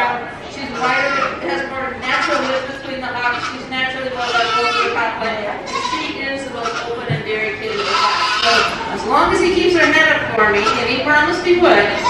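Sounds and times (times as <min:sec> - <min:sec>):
woman speaking through microphone: 0:00.0 - 0:12.0
goat kids bleating: 0:00.6 - 0:08.9, 0:10.4 - 0:11.0, 0:11.7 - 0:12.0.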